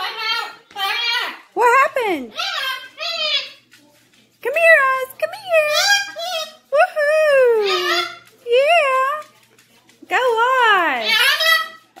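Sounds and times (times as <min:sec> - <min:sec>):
cockatoo high-pitched calls: 0:02.3 - 0:03.6, 0:07.4 - 0:08.3, 0:11.0 - 0:12.0.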